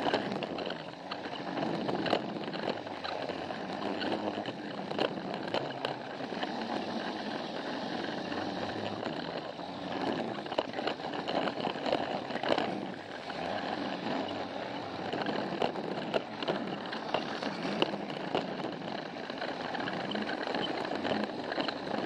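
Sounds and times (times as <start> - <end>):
toy train motor whirring: 0.0 - 22.0
wheels clicking over track joints: 0.0 - 22.0.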